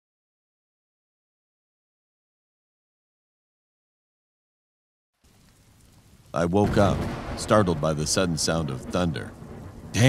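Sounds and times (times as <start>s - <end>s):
faint rain hiss: 5.2s - 10.0s.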